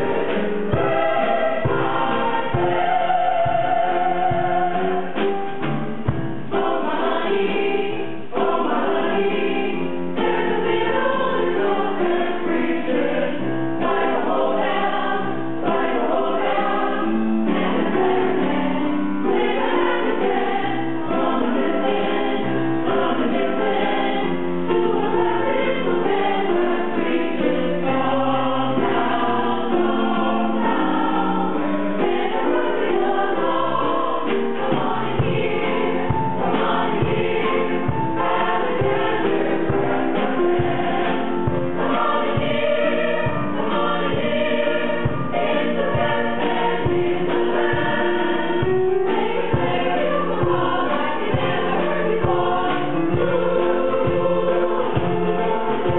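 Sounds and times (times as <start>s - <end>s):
mixed choir singing ragtime: 0.0s - 55.9s.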